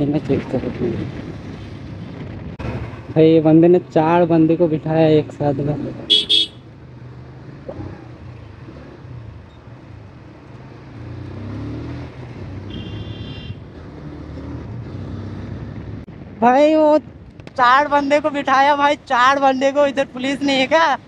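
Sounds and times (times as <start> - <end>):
motorcycle engine accelerating: 6.8 - 16.1.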